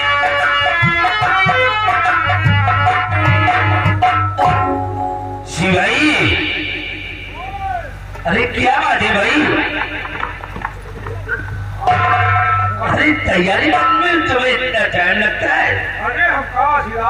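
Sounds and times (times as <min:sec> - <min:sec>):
music playing: 0:00.0 - 0:08.0, 0:09.1 - 0:16.0.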